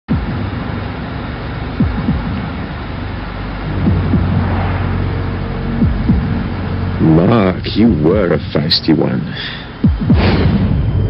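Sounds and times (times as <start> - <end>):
car engine and road rumble: 0.1 - 11.0
short falling sweeps: 3.6 - 6.8.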